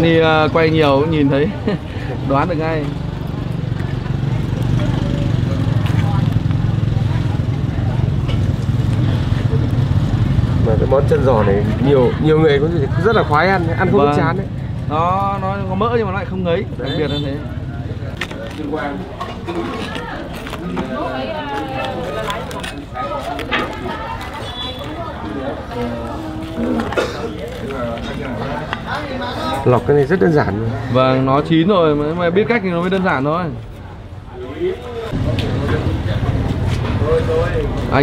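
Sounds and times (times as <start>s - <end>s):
voices talking: 0.0s - 38.0s
faint voices: 16.7s - 31.4s.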